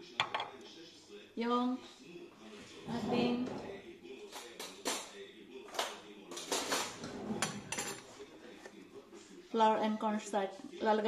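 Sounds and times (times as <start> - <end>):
metal cutlery clinking: 5.7 - 8.2.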